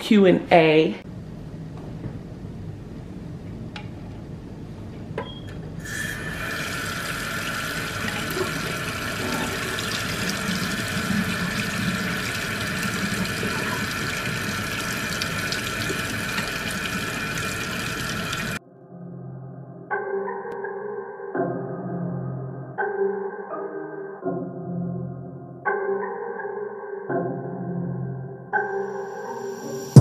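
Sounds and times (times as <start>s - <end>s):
tap water running into metal pot: 5.9s - 18.6s.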